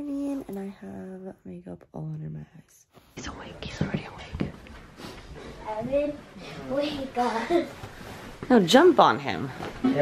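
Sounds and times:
hushed whispering: 3.2s - 4.5s.

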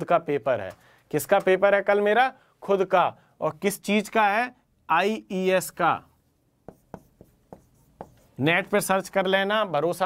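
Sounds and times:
marker pen writing on whiteboard: 6.6s - 9.0s.

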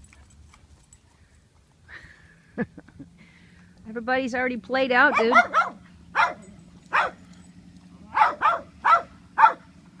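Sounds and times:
dog barking: 5.1s - 7.2s, 8.1s - 9.7s.

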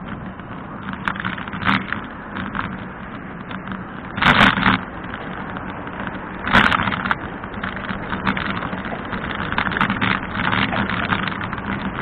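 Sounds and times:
car traffic: 0.0s - 12.0s.

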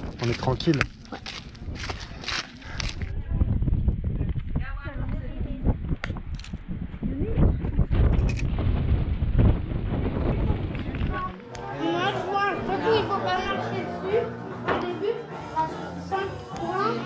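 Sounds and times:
wind buffeting microphone: 0.0s - 11.4s
child talking: 11.1s - 17.0s.

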